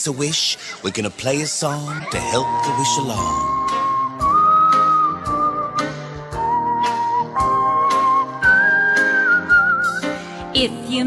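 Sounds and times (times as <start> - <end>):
whistled melody: 2.1 - 10.3.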